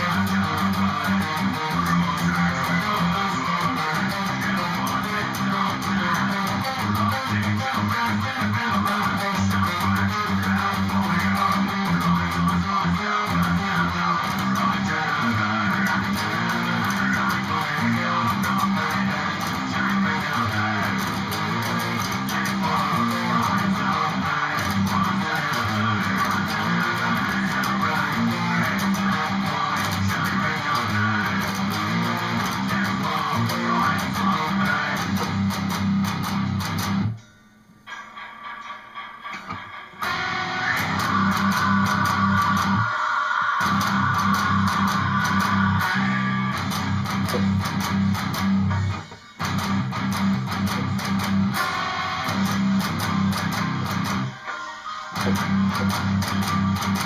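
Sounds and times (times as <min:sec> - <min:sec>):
electric guitar heavy metal riff: 0:00.0 - 0:57.0.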